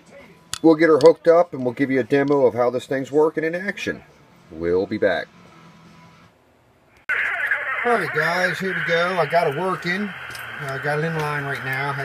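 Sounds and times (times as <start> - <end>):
radio static hiss: 7.1 - 12.0.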